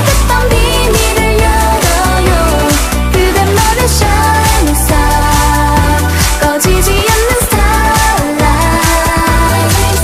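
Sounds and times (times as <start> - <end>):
pop song with female vocal: 0.0 - 10.0.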